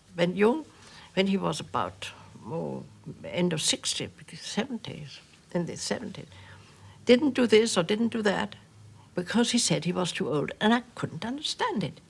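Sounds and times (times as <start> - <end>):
elderly woman speaking softly: 0.2 - 6.4.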